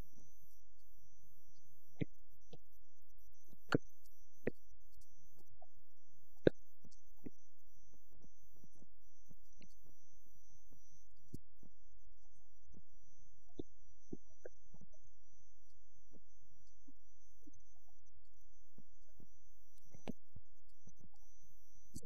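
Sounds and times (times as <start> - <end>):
faint high-pitched whine: 0.0 - 22.0.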